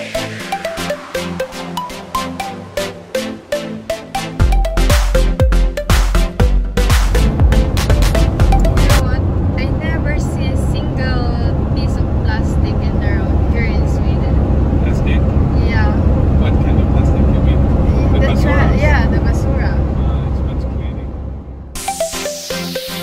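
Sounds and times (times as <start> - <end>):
music: 0.0 - 9.2, 21.7 - 23.0
road and engine rumble: 6.3 - 21.8.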